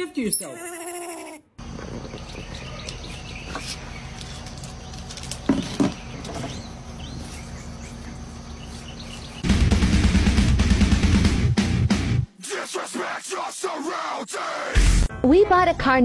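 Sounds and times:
loud music: 9.4 - 15.4.

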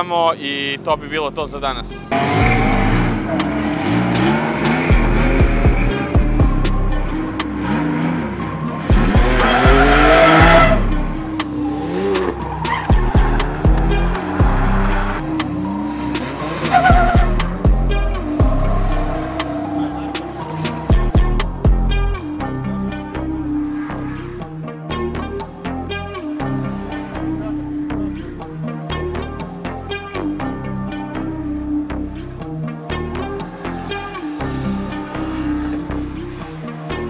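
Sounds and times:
car engines revving: 0.6 - 37.0
background music with beat: 1.8 - 37.0
tyres squealing: 7.0 - 21.6.

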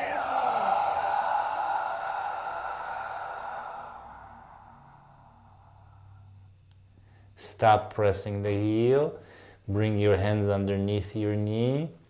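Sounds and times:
man exhaling slowly: 0.0 - 7.2.

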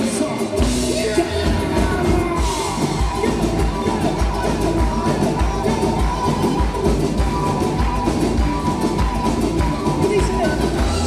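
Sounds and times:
bass: 0.0 - 11.0
steady drum beat: 0.0 - 11.0.

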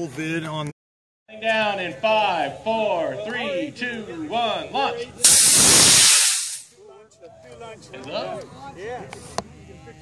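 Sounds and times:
model rocket exhaust hiss: 5.2 - 6.7.

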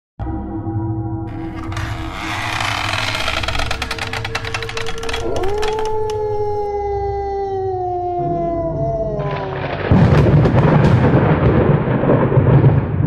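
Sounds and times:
rumbling crackling noise: 1.3 - 6.7, 8.8 - 13.0
wolf howl: 4.9 - 9.9.

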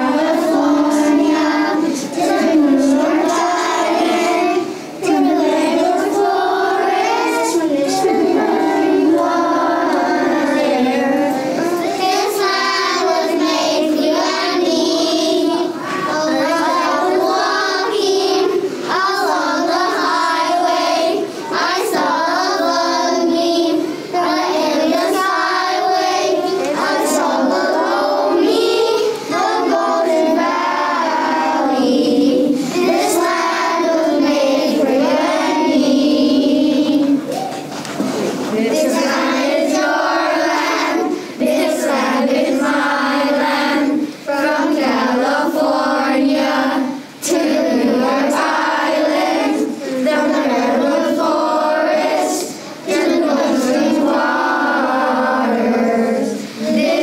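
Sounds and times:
young children singing: 0.0 - 57.0.

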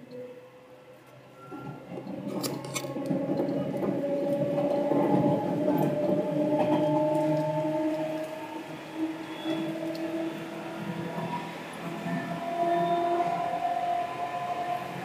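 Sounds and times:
electric train motor whine: 1.4 - 15.0.

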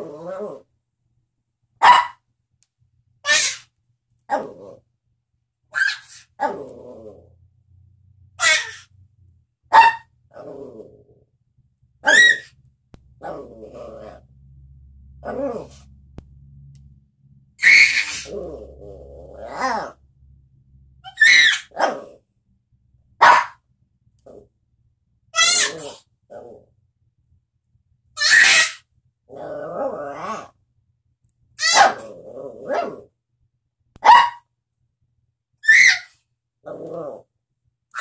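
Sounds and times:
puppy yapping and grumbling: 0.0 - 0.7, 4.3 - 4.8, 5.8 - 7.4, 8.4 - 8.9, 12.0 - 12.6, 13.2 - 14.3, 15.2 - 15.9, 17.6 - 20.0, 21.0 - 22.2, 25.4 - 26.7, 28.2 - 30.6, 31.6 - 33.1, 35.6 - 37.3.

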